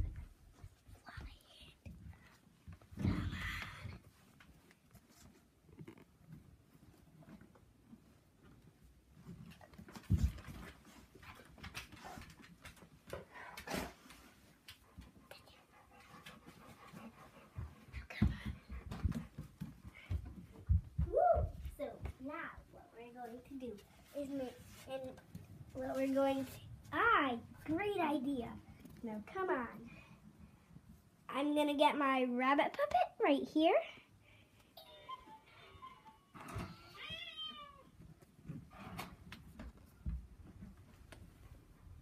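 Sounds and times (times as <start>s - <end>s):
handheld camera thumps and rustling: 9.3s - 13.0s.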